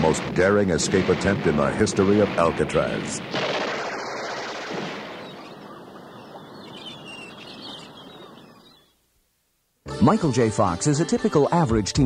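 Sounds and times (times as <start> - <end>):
gunfire-like action sound effects: 0.0 - 5.6
faint high chirps: 5.2 - 9.0.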